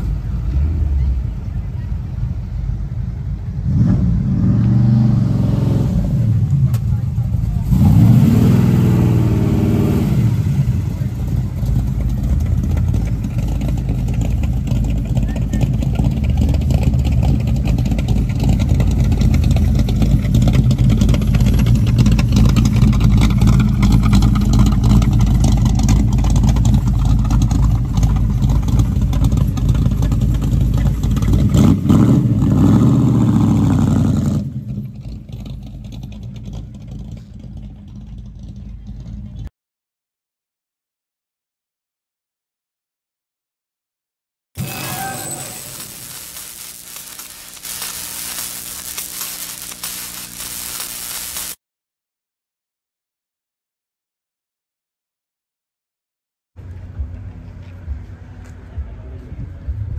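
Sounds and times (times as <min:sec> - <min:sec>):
car engine revving: 0:03.5 - 0:06.5, 0:07.4 - 0:35.7.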